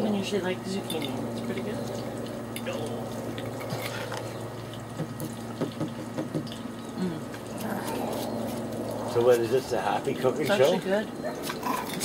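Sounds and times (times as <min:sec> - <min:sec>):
oil bubbling and sizzling: 0:00.0 - 0:12.0.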